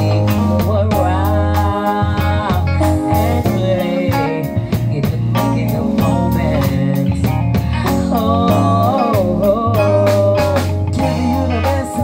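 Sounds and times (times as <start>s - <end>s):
bass notes: 0.0s - 12.0s
electric guitar: 0.0s - 12.0s
steady drum beat: 0.0s - 12.0s.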